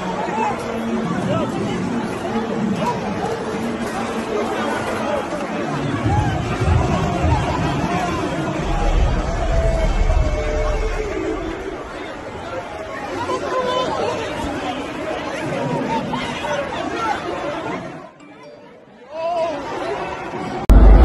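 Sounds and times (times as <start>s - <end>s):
crowd talking and shouting: 0.0s - 21.0s
loud low rumble: 8.6s - 12.2s, 20.7s - 21.0s.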